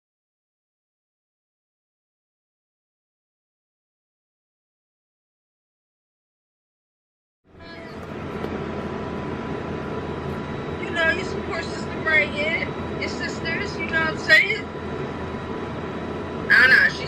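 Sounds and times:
steady hum and hiss: 7.5 - 17.0
voices through phone speaker: 7.6 - 8.2, 10.8 - 14.8, 16.4 - 17.0.

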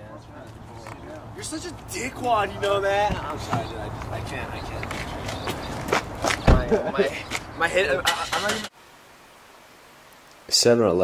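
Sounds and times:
faint steady hiss: 7.0 - 11.0.

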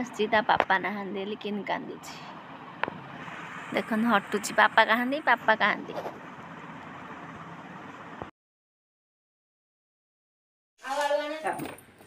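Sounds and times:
outdoor ambience: 0.0 - 8.3.

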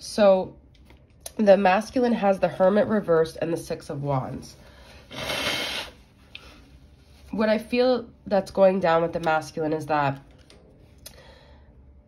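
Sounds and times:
person breathing: 4.6 - 6.7, 11.1 - 11.8.

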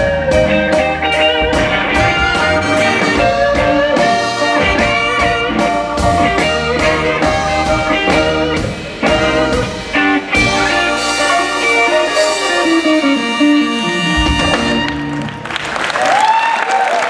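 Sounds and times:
electric guitar notes: 0.0 - 15.6
live blues band playing: 0.0 - 15.9.

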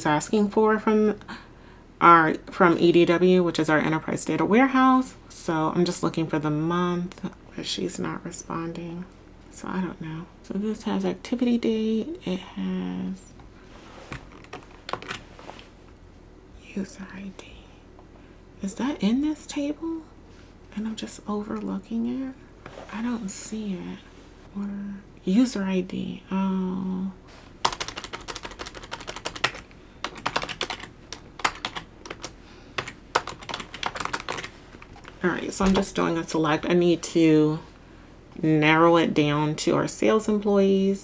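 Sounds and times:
computer keyboard typing: 14.3 - 15.2, 27.6 - 35.9.

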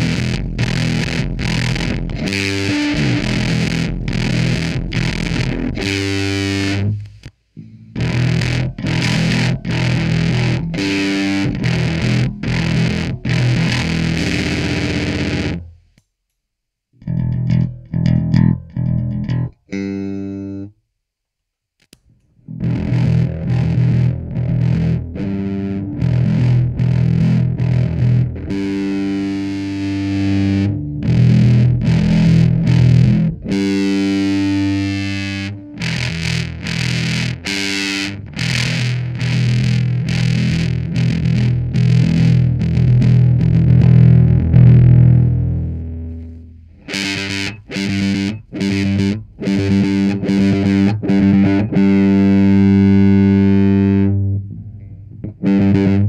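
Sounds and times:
distorted electric bass riffs: 0.0 - 15.9, 17.0 - 20.7, 22.4 - 56.0.

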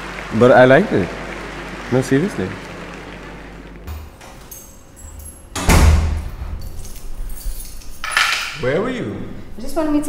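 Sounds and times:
door shutting with heavy thud: 5.5 - 6.7.

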